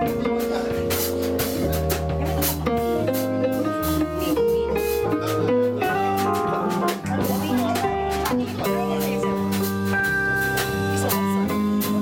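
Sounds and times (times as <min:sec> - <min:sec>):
drums with cymbal strokes: 0:00.0 - 0:12.0
electric guitar: 0:00.0 - 0:12.0
electric keyboard: 0:00.0 - 0:12.0
upright bass: 0:00.0 - 0:12.0.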